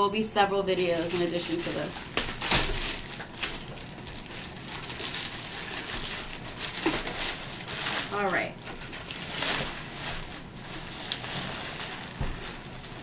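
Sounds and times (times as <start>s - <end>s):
plastic wrap crinkling: 0.0s - 13.0s.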